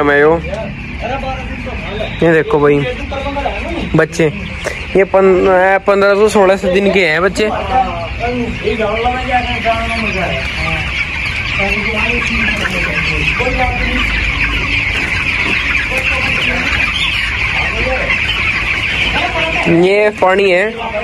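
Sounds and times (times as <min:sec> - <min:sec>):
chicks peeping: 0:00.0 - 0:21.0.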